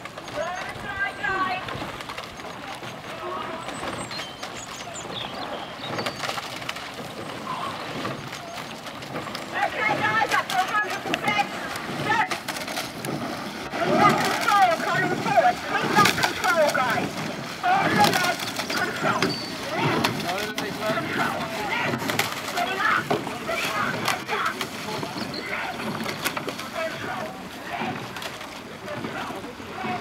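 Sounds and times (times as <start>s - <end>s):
raised voices calling out: 9.5s - 12.4s, 13.7s - 30.0s.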